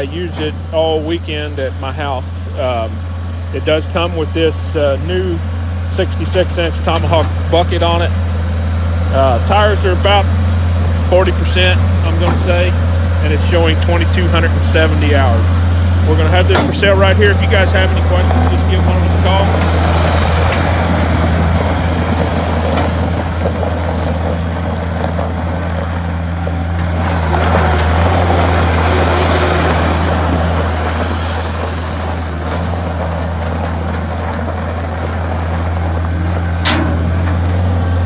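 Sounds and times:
diesel engine running: 0:00.0 - 0:38.0.

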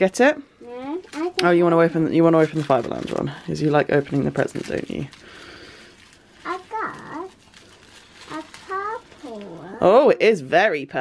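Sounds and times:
child's high-pitched vocalizations: 0:06.4 - 0:07.4, 0:08.3 - 0:09.9.

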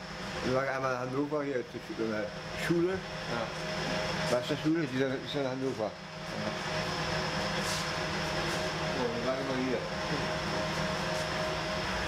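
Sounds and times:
bakery machinery humming: 0:00.0 - 0:12.0.

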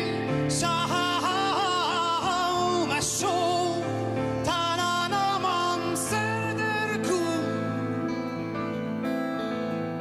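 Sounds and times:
man singing: 0:00.0 - 0:08.3.

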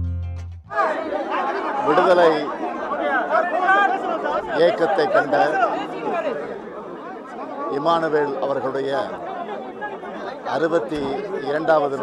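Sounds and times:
music with low notes: 0:00.0 - 0:00.7
crowd talking: 0:00.7 - 0:12.0.

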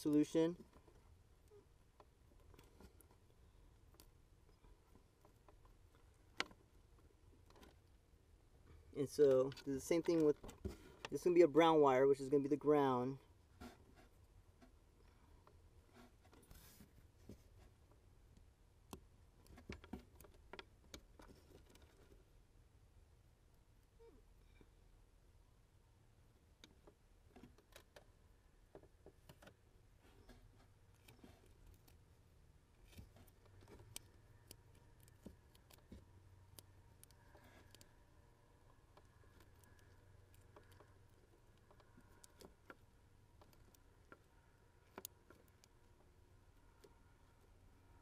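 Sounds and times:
hands handling wires: 0:00.0 - 0:12.3, 0:12.9 - 0:22.3, 0:26.5 - 0:48.0.

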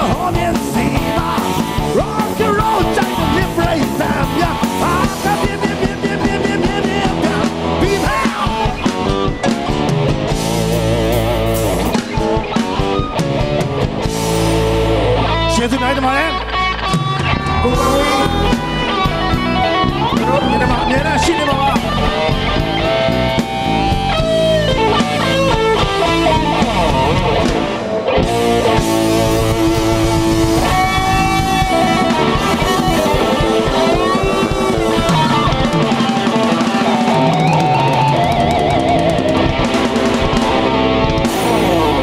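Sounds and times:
bass guitar: 0:00.0 - 0:42.0
drum kit: 0:00.0 - 0:42.0
electric guitars: 0:00.0 - 0:42.0.

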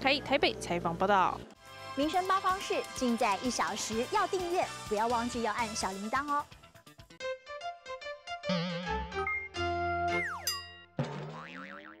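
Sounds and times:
wobbling high tone: 0:08.5 - 0:09.5.

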